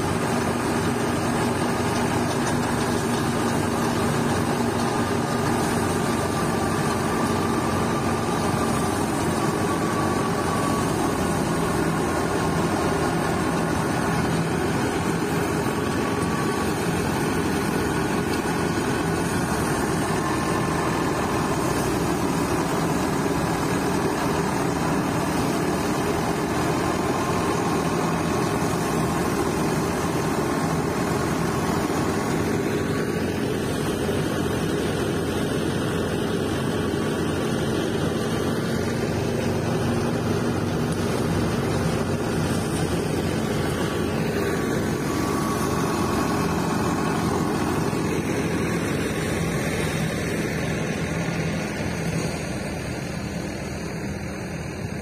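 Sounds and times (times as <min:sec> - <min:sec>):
threshing drum churning: 0:00.0 - 0:52.1
tractor engine under load: 0:00.0 - 0:55.0.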